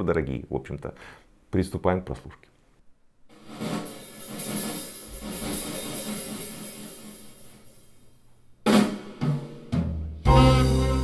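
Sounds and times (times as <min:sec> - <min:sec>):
cymbals and hi-hat: 0:03.3 - 0:08.1
drum-led music over speakers: 0:08.7 - 0:11.0
loud drum hit: 0:08.7 - 0:11.0.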